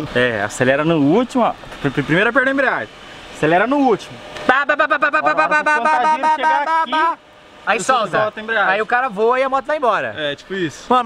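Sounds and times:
man talking quickly: 0.0s - 11.0s.

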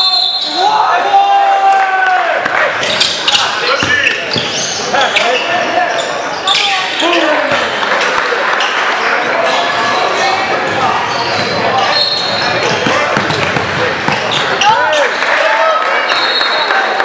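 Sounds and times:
crowd chatter: 0.0s - 17.0s
basketball bouncing on wooden floor: 12.8s - 14.2s.

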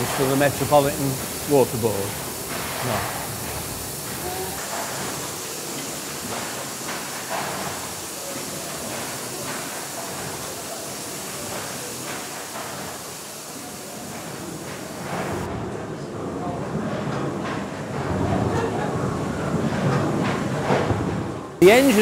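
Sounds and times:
steam engine running: 0.0s - 15.5s, 21.6s - 22.0s
steam hissing: 0.0s - 15.5s, 21.6s - 22.0s.

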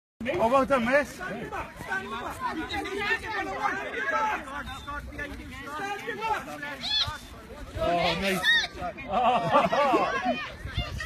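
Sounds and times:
voices chattering and calling out: 0.2s - 11.0s.

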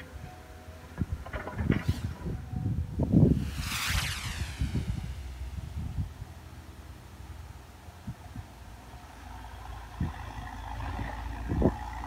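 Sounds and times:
wind gusting on microphone: 1.0s - 6.8s.

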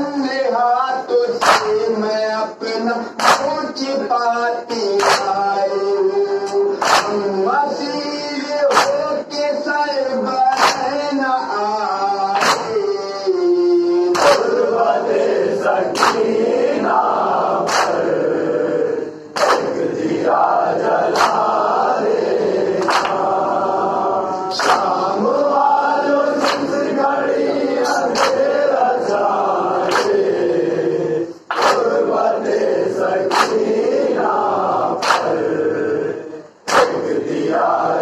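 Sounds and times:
men chanting a lament: 0.0s - 38.0s
chest-beating slaps: 1.4s - 1.8s, 3.2s - 3.5s, 5.0s - 5.4s, 6.5s - 7.3s, 8.7s - 9.1s, 10.5s - 11.0s, 12.4s - 12.9s, 14.1s - 14.6s, 15.9s - 16.4s, 17.6s - 18.1s, 19.4s - 20.2s, 21.0s - 21.8s, 22.8s - 23.4s, 24.5s - 25.1s, 26.3s - 26.9s, 27.8s - 28.5s, 29.8s - 30.3s, 31.5s - 32.0s, 33.3s - 33.8s, 35.0s - 35.4s, 36.7s - 37.2s.

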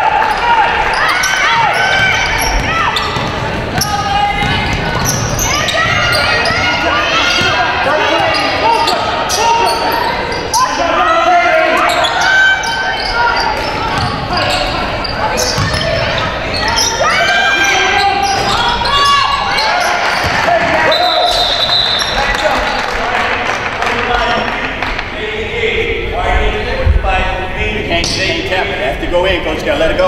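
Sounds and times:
people calling out: 0.0s - 22.9s.

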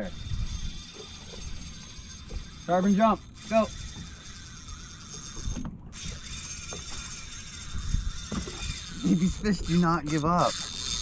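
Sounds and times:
fishing reel whirring: 0.0s - 11.0s.

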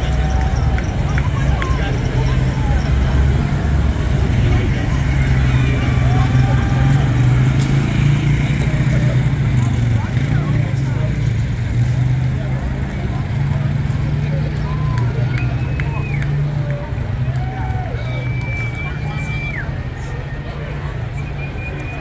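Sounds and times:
crowd chatter: 0.0s - 22.0s
vehicle engines passing slowly: 0.0s - 22.0s.

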